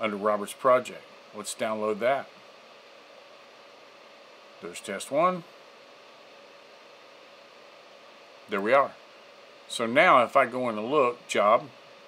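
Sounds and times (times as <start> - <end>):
faint steady hum: 0.0 - 12.0
microphone hiss: 0.0 - 12.0.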